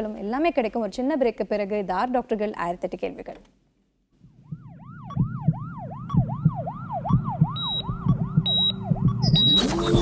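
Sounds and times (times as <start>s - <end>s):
regular low thump: 4.3s - 9.5s
siren-like electronic wail: 4.3s - 10.0s
short high beeps: 8.5s - 10.0s.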